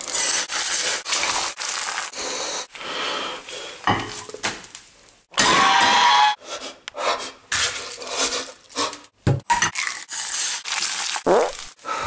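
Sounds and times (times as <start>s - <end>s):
egg sizzling in frying pan: 0.0s - 2.2s.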